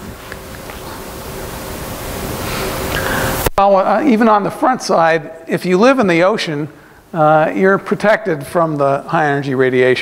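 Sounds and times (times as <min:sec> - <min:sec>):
faint low hum: 0:00.0 - 0:10.0
room noise hiss: 0:00.0 - 0:10.0.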